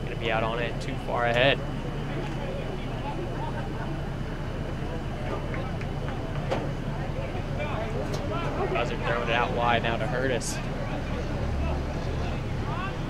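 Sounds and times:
steady low hum: 0.0 - 13.0
distant shouts from players: 10.6 - 13.0.

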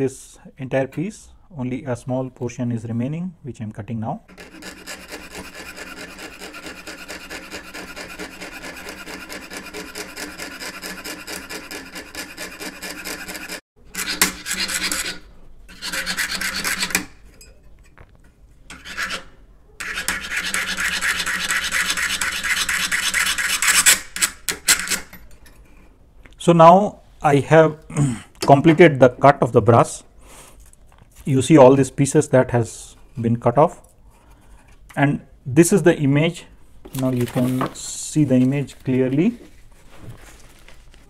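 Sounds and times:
saw cutting metal sheet: 4.3 - 17.1.

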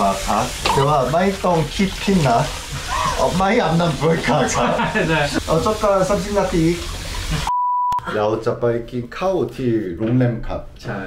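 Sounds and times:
men talking: 0.0 - 6.9, 8.0 - 11.0.

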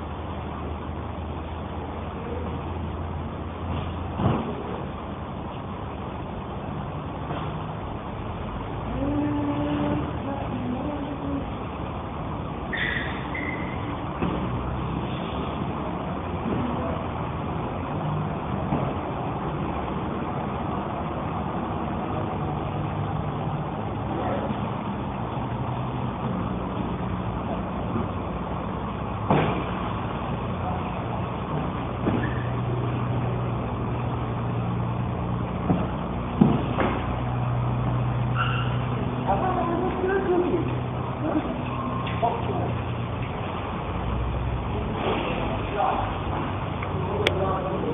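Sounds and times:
brief high squeak: 12.7 - 13.8, 32.2 - 32.5, 38.3 - 38.8.

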